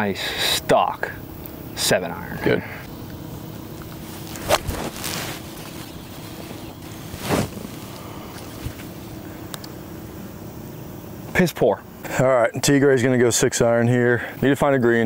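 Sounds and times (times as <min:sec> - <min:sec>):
faint open-air background noise: 0:00.0 - 0:15.0.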